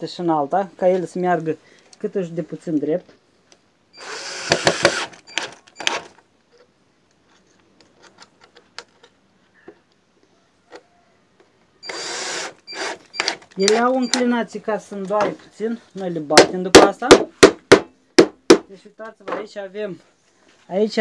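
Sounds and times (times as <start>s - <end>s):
cordless drill driving screws: 4.0s - 6.2s, 11.8s - 14.2s.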